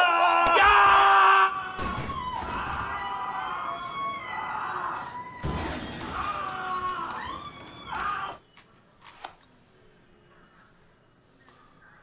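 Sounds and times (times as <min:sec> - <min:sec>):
glass shattering: 0:05.4 - 0:07.4.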